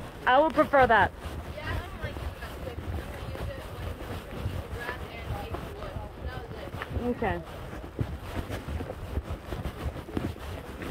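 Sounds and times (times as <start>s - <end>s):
microphone jostling: 0.0s - 10.9s
wind rumble on microphone: 0.0s - 10.9s.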